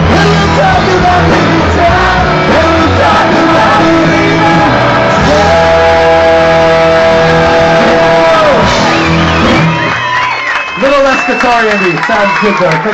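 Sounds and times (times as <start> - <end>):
loud live band playing: 0.0 - 12.9.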